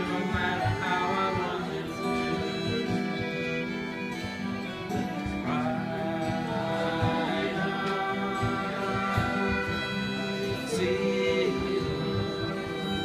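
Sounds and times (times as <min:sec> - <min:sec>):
acoustic guitar: 0:00.0 - 0:13.0
fiddle playing: 0:00.0 - 0:13.0.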